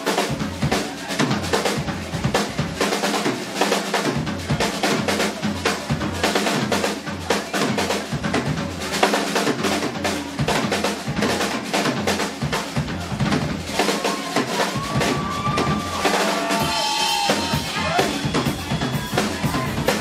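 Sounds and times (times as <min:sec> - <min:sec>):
rock drum kit played fast: 0:00.0 - 0:20.0.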